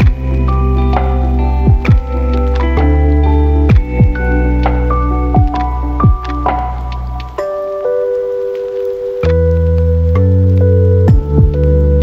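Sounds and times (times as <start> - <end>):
soft held music notes: 0.0 - 12.0.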